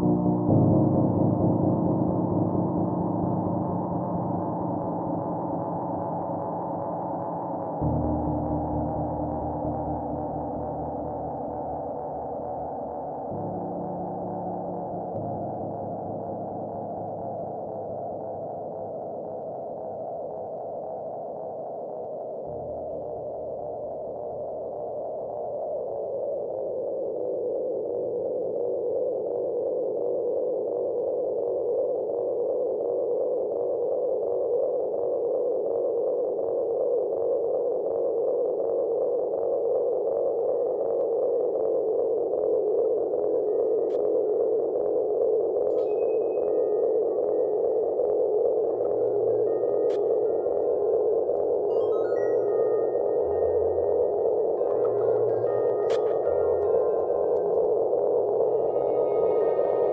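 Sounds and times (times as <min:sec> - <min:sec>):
synthesizer drone: 0:00.0 - 0:19.2, 0:43.0 - 0:59.9
faint high bleeps: 0:42.9 - 0:59.9.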